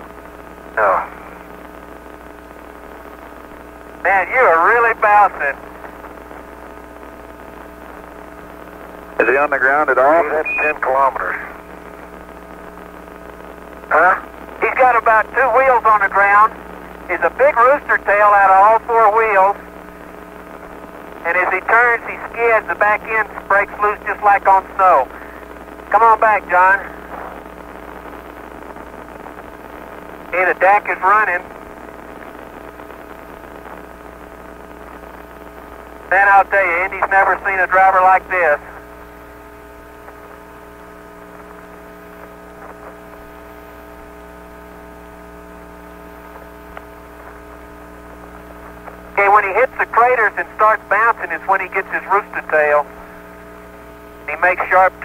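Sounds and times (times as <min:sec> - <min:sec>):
faint radio hiss and hum: 0:00.0 - 0:55.0
man talking over radio: 0:00.8 - 0:01.4, 0:04.0 - 0:06.0, 0:09.2 - 0:11.7, 0:13.9 - 0:19.7, 0:21.2 - 0:27.4, 0:30.3 - 0:31.6, 0:36.1 - 0:38.9, 0:49.1 - 0:53.0, 0:54.3 - 0:55.0.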